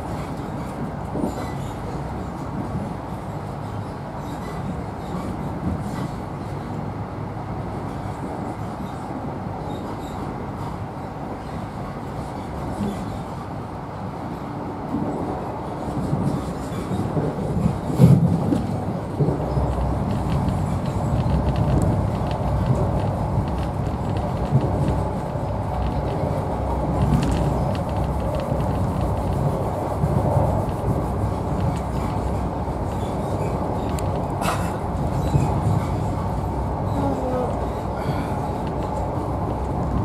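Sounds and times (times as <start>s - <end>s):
train wheels rumbling on track: 0.0s - 40.0s
sharp bump of train: 16.0s - 21.0s, 33.0s - 36.2s.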